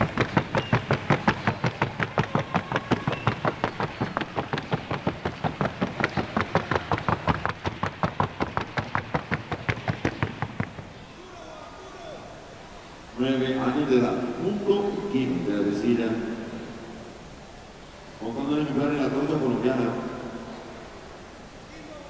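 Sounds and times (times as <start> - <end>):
horse hooves striking floor: 0.0 - 11.0.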